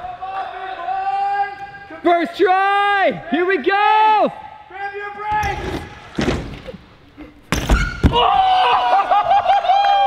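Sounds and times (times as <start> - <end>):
bike tyres rumbling on wooden boards: 5.4 - 6.8.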